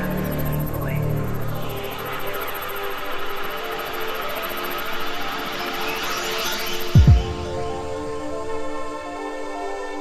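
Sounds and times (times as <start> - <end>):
electronic music with held tones: 0.0 - 10.0.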